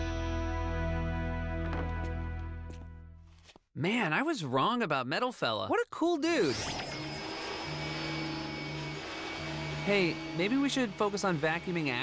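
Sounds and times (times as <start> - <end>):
vacuum cleaner running: 6.7 - 12.0
person speaking: 9.8 - 12.0.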